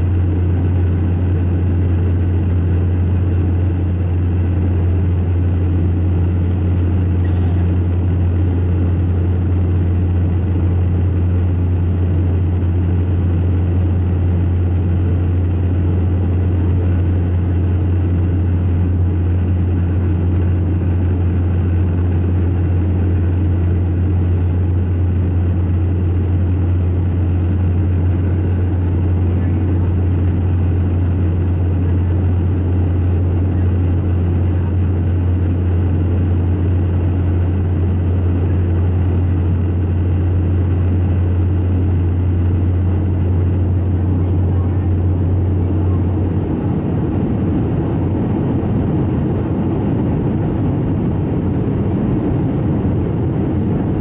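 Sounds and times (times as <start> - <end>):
aircraft cabin drone: 0.0 - 54.0.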